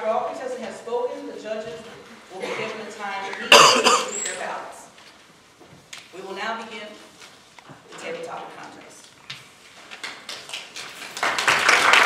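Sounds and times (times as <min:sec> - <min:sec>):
person coughing: 0:03.4 - 0:04.2.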